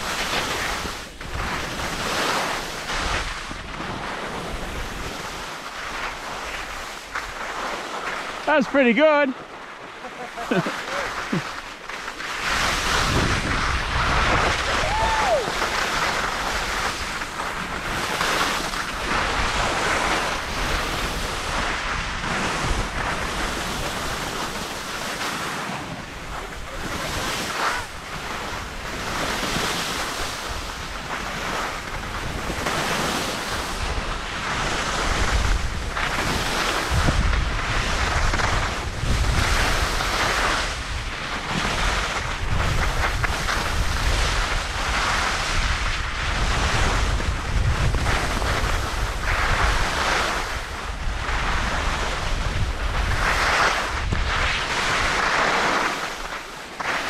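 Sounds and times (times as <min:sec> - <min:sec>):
wind buffeting microphone: 0:00.0 - 0:56.6
skis scraping over snow: 0:00.0 - 0:57.0.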